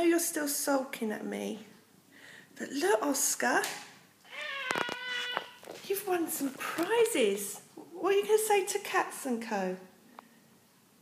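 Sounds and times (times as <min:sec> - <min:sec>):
cat meowing: 0:04.3 - 0:05.6.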